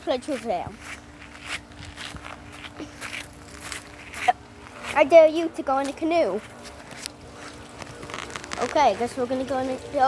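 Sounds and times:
faint steady hum: 0.0 - 10.0
footsteps outdoors: 0.0 - 10.0.

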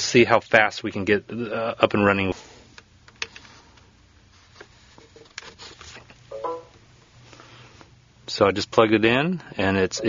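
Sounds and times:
brief pitched tone: 6.3 - 6.8.

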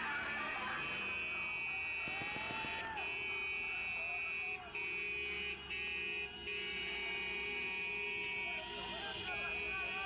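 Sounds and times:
car horn blasts: 0.6 - 10.0.

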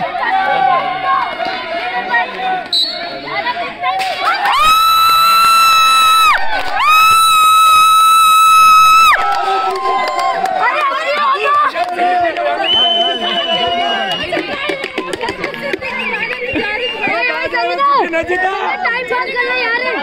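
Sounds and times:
crowd voices and shouting: 0.0 - 20.0
referee's whistle blasts: 2.7 - 3.2.

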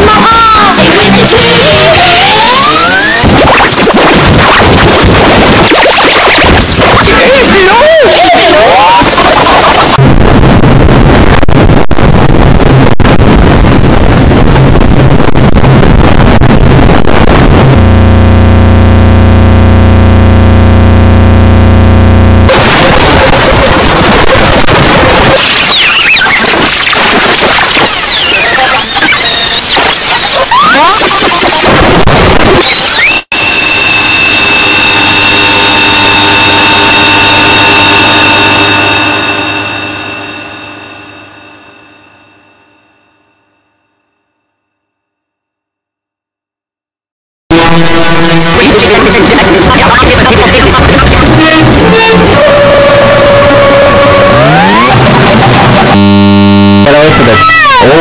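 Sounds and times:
harsh distorted noise: 0.0 - 42.2, 47.5 - 58.0
buzzing drone: 12.4 - 31.6, 32.6 - 41.8, 47.5 - 58.0
high whining tones: 32.6 - 42.6, 47.5 - 58.0.

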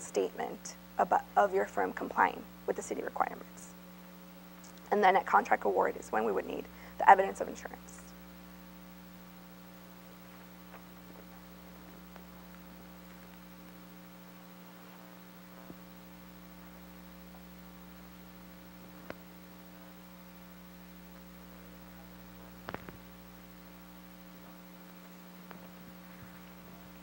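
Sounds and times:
electrical mains hum: 0.0 - 27.0.

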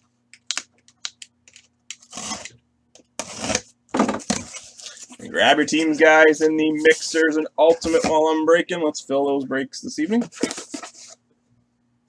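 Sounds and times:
box cutter scraping cardboard: 2.0 - 2.5, 3.2 - 3.7.

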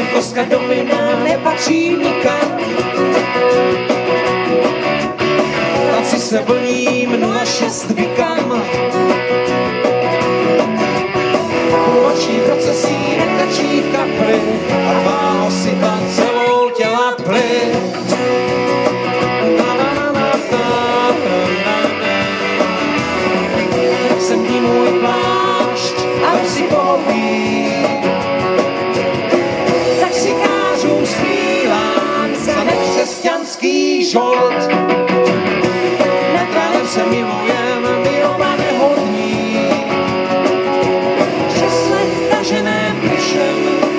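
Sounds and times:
drum kit: 0.0 - 43.9
electric and acoustic guitars: 0.0 - 43.9.

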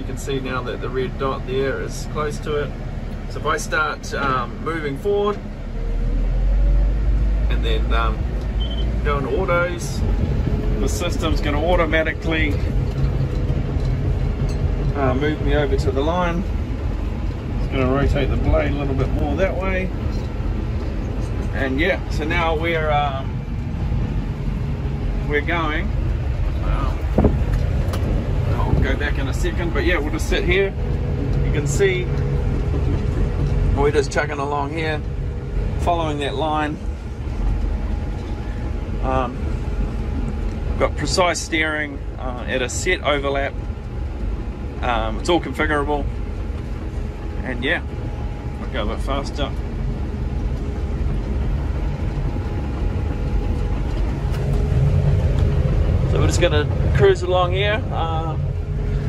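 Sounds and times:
bulldozer diesel engine running: 0.0 - 59.0
faint steady whine: 0.0 - 59.0.

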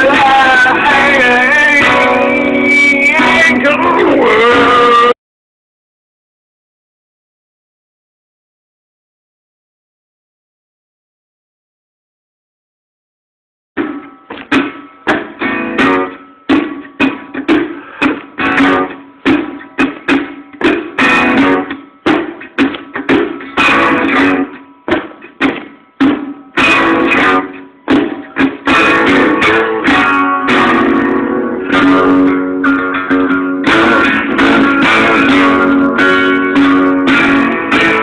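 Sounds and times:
guitar strumming: 0.0 - 5.2, 13.8 - 38.0.

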